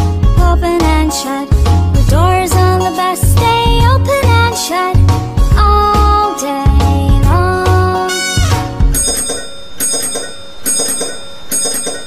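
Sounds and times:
dome bell dinging: 8.8s - 12.0s.

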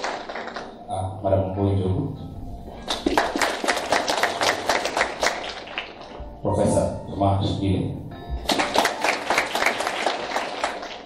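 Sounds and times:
audience applauding: 0.0s - 0.8s, 2.9s - 6.2s, 8.5s - 11.0s.

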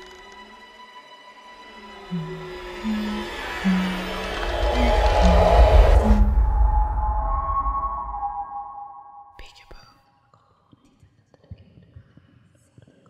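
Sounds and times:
ringing tones over low rumble: 2.1s - 9.3s
faint whispering: 9.4s - 10.0s.

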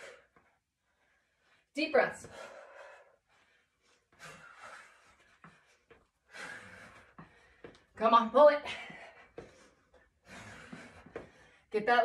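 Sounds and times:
woman breathing hard: 0.0s - 7.9s, 8.7s - 11.7s.

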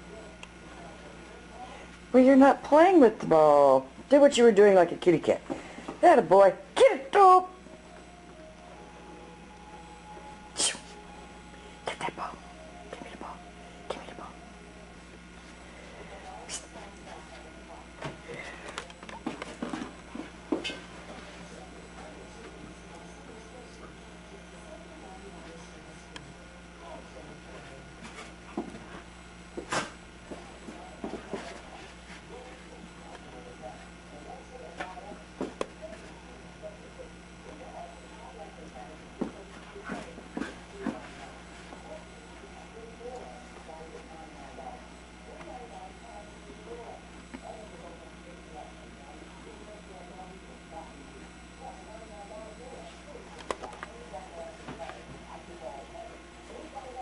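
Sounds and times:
dog playing on carpet: 39.2s - 41.8s.

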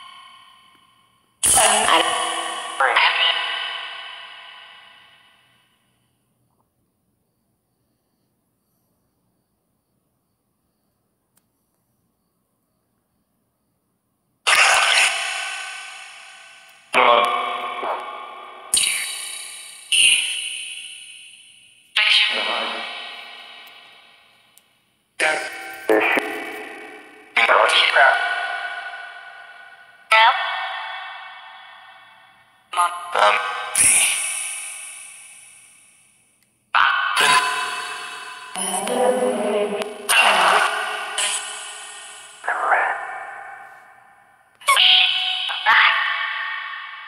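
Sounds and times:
echoing voice-like fragments: 0.0s - 0.6s, 1.4s - 5.4s, 14.5s - 24.5s, 25.2s - 35.6s, 36.8s - 47.0s.

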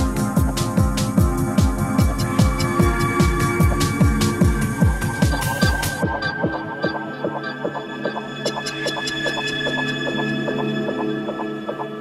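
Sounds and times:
even ticking rhythm: 0.0s - 12.0s
hi-hats: 0.0s - 12.0s
sustained synth pad: 0.0s - 12.0s.

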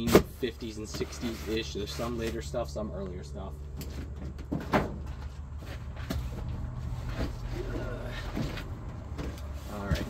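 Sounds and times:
cardboard boxes being moved: 3.9s - 10.0s.

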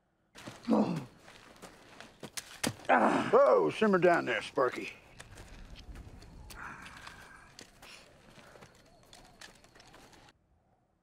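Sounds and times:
crawling on dirt and gravel: 0.4s - 10.3s
small clicks: 5.1s - 10.3s.

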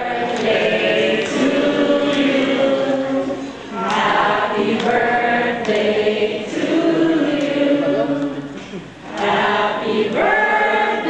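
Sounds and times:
group of voices singing: 0.0s - 11.0s.

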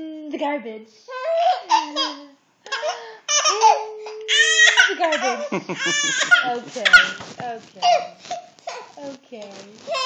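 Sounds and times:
baby laughing: 1.3s - 8.1s.

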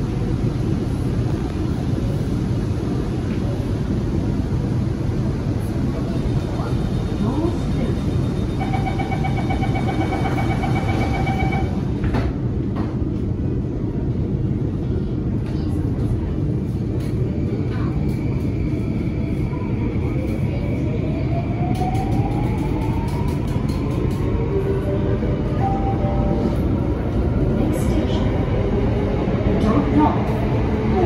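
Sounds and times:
metro car rumble: 0.0s - 31.0s
pulsing door warning tone: 8.3s - 11.7s.

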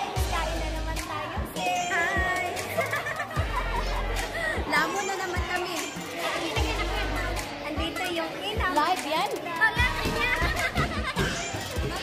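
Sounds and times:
background music: 0.0s - 12.0s
children playing: 0.0s - 12.0s
people chattering: 0.0s - 12.0s.

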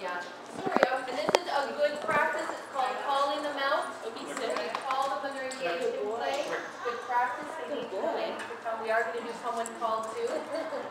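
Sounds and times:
people's voices: 0.0s - 10.9s
dog claws clicking on hard floor: 4.3s - 6.6s.

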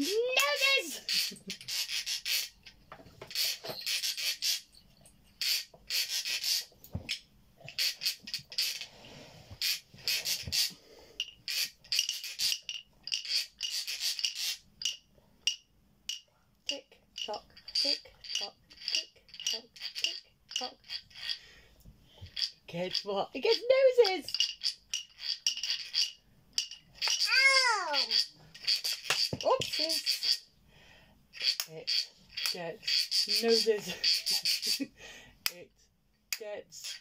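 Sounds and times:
toy percussion rattling and rasping: 0.0s - 8.9s, 9.5s - 30.5s, 31.3s - 35.6s, 36.7s - 37.0s.

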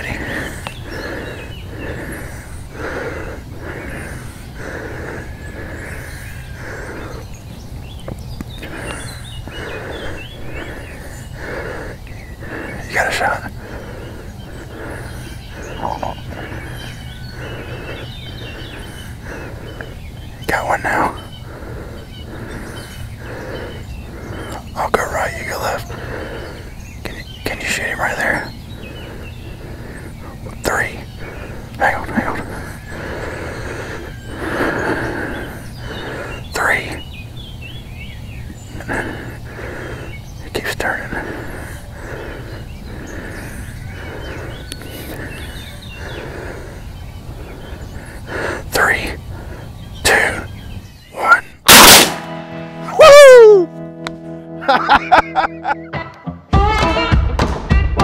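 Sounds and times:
shotgun blasts: 51.7s - 52.6s.

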